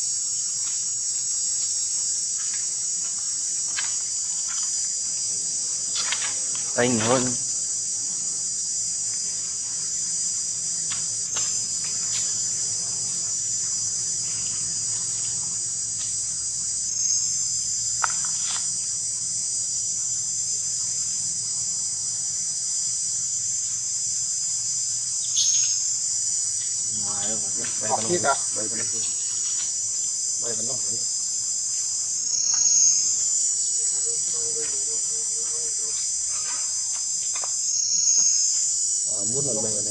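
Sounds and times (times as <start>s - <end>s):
insects buzzing: 0.0s - 39.9s.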